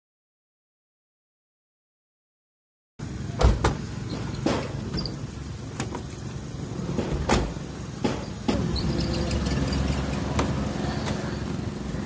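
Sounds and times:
sliding van door opening: 6.7s - 11.6s.

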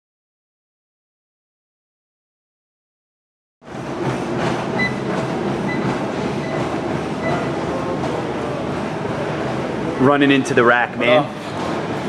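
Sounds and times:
gym room noise: 3.6s - 12.0s.

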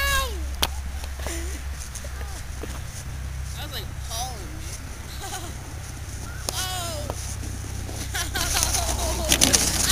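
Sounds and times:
people calling out: 0.0s - 0.5s, 6.3s - 7.2s
steady low hum: 0.0s - 9.9s.

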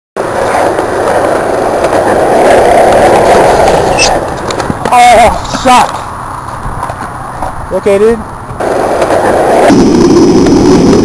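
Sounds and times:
skateboard wheels rolling on concrete: 0.2s - 11.0s.

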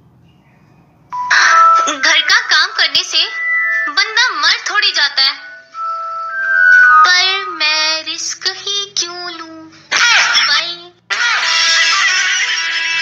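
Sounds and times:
music with high-pitched singing: 1.2s - 7.8s.

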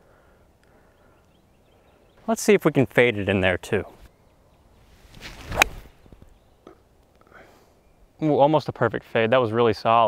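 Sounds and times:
golf club swishing: 4.8s - 6.4s
golf ball struck with crack: 5.0s - 6.4s.

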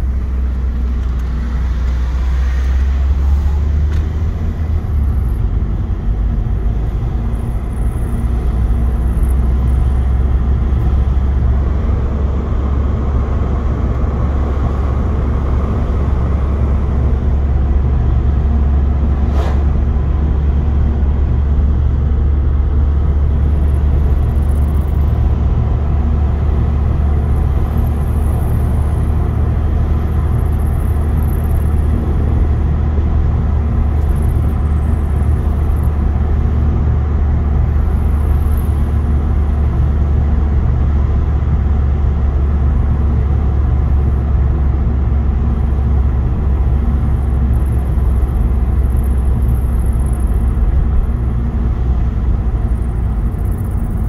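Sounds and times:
car engine and tyre noise: 0.0s - 54.0s.

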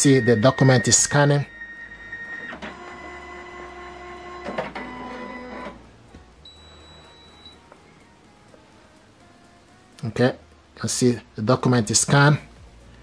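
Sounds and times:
scanner motor whining: 0.0s - 5.8s.

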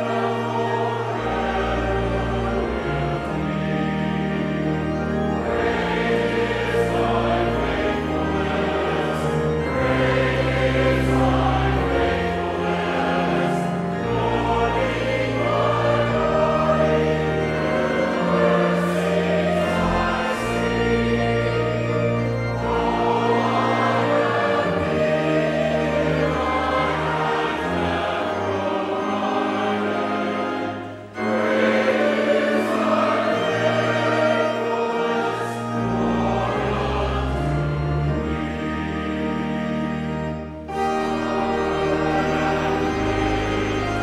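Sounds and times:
choir and congregation singing hymn: 0.0s - 44.0s
instrumental accompaniment: 0.0s - 44.0s.

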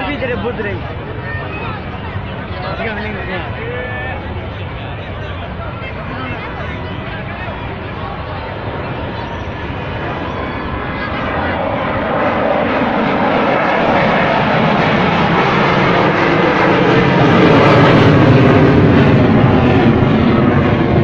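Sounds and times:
jet engine roaring overhead: 0.0s - 21.0s.

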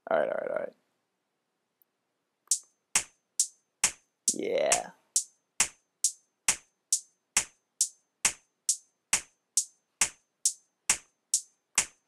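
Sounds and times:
drum machine hi-hat ticking: 2.5s - 12.0s.

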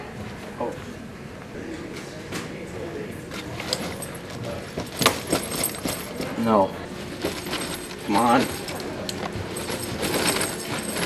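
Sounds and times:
backpack fabric rustling: 3.6s - 6.2s, 6.9s - 11.0s.

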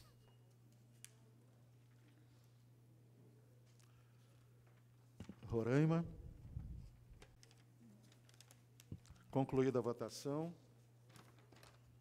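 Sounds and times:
low steady hum: 0.0s - 11.1s.

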